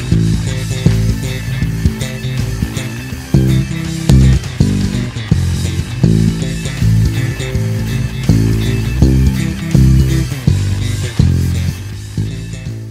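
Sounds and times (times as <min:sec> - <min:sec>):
electric bass fingerstyle: 0:00.0 - 0:12.9
rock band with guitar: 0:00.0 - 0:12.9.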